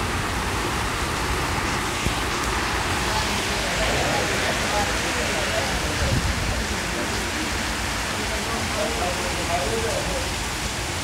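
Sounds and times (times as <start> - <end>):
heavy rain pouring: 0.0 - 11.0
strong wind: 0.0 - 11.0.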